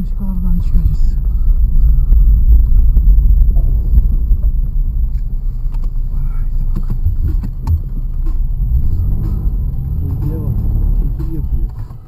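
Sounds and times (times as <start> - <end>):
car engine low rumble: 0.0 - 12.0.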